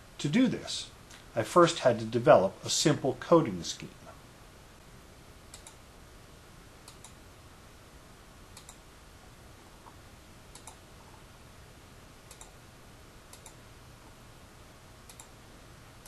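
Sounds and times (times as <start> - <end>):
faint steady hiss: 0.0 - 16.0
computer mouse clicking: 5.5 - 5.8, 6.8 - 7.2, 8.6 - 8.8, 10.5 - 10.8, 12.3 - 12.6, 13.3 - 13.6, 15.1 - 15.4.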